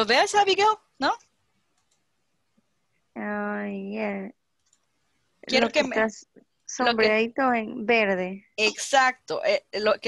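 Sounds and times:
person speaking: 5.4 - 10.0.

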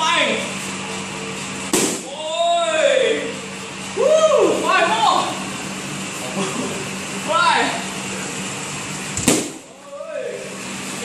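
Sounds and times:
strike smacking a pad: 1.7 - 2.1, 9.2 - 9.6
person shouting: 4.0 - 5.4.

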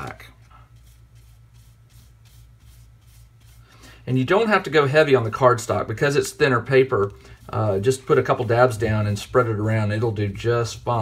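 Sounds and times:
paintbrush brushing on cardstock: 0.0 - 10.4.

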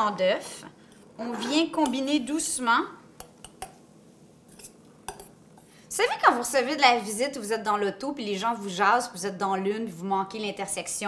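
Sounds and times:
spoon scraping metal bowl: 4.5 - 5.4.

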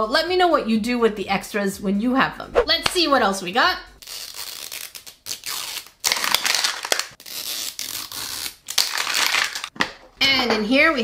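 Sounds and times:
plastic wrapper crinkling: 4.3 - 9.8.

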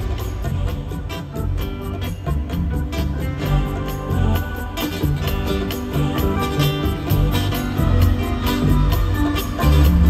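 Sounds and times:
bass line: 0.0 - 10.0
guitar: 0.0 - 10.0
keyboards: 0.0 - 10.0.

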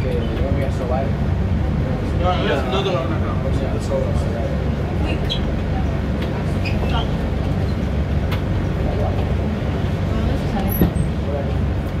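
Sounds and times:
funicular car rumbling: 0.0 - 12.0.

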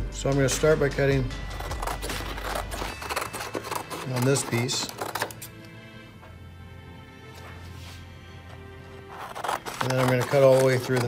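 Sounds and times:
soft background music: 0.0 - 11.0
scissors snipping card: 1.6 - 5.6, 9.2 - 11.0.

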